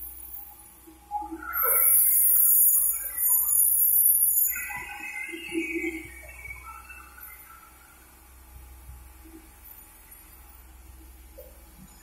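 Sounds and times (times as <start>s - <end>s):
shrill chirping and buzzing: 1.6s - 4.8s.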